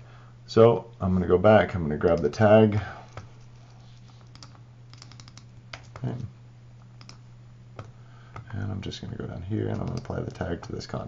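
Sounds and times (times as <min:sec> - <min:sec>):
low steady hum: 0:00.0 - 0:11.0
keyboard keystrokes: 0:04.3 - 0:06.3, 0:07.0 - 0:07.2, 0:09.7 - 0:10.8
mouse clicks: 0:07.0 - 0:07.2.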